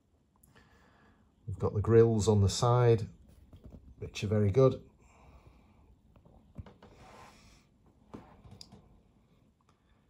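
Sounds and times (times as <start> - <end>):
soft breath-like hiss: 6.9 - 8.3.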